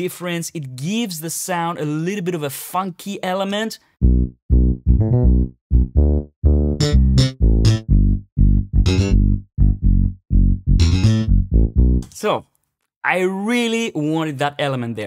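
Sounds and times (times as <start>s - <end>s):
slapped electric bass line: 4.0s - 12.1s.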